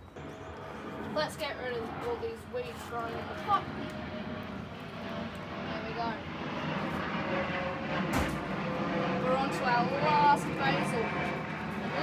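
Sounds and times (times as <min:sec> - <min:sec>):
airplane passing overhead: 0:00.0 - 0:12.0.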